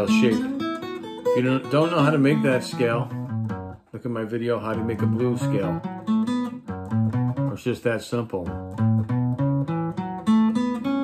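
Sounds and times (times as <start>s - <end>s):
acoustic guitar picked notes: 0.0s - 11.0s.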